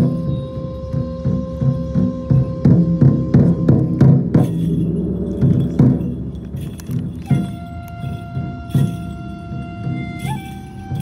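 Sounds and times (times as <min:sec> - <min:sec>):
taiko drum strokes: 0:00.0 - 0:11.0
light metallic jingling: 0:04.4 - 0:11.0.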